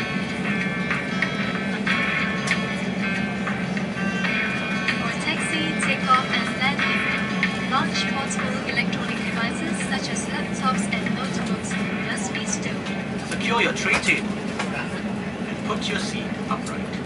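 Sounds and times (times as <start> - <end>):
aircraft cabin hum: 0.0 - 17.0
soft background music: 0.0 - 17.0.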